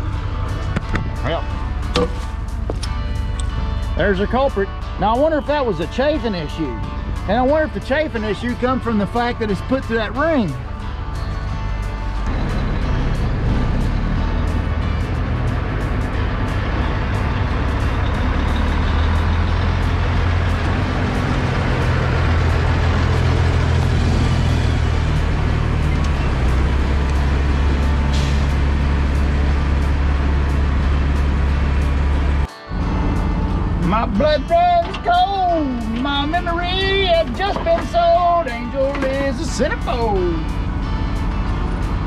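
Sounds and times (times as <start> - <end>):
diesel engine running: 0.0 - 42.0
music playing: 0.0 - 42.0.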